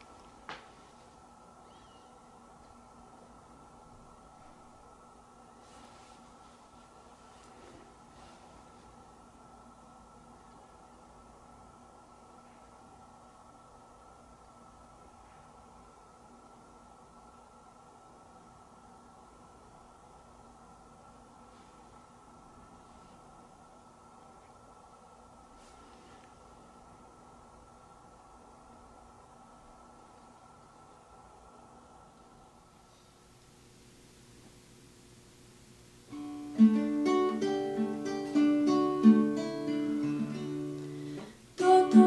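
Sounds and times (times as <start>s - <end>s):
steady low hum: 0.0s - 42.0s.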